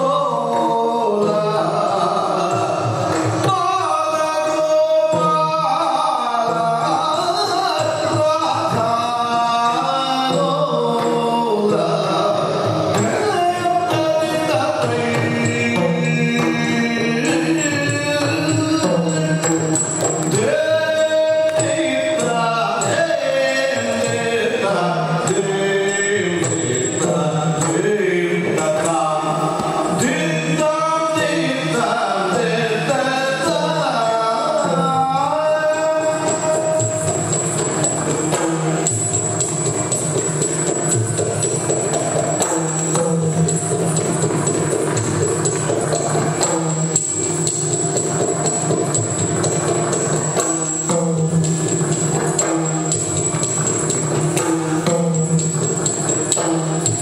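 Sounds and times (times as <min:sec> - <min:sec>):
singer chanting melody: 0:00.0 - 0:39.1
drum strokes: 0:00.1 - 0:57.0
jingling bells: 0:34.6 - 0:57.0
small hand cymbals ringing: 0:35.7 - 0:57.0.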